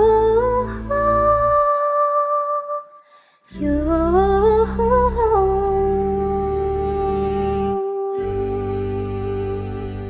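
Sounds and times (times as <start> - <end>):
woman singing lead: 0.0 - 10.0
group humming low chord: 3.8 - 10.0.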